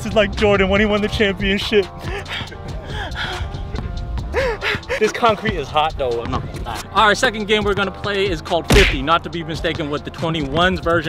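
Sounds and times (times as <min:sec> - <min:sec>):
background music: 0:00.0 - 0:11.0
man gasping and sighing: 0:02.0 - 0:05.1.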